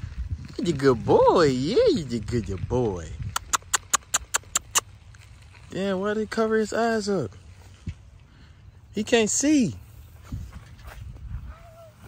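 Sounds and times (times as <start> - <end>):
person clicking tongue: 3.3 - 4.8.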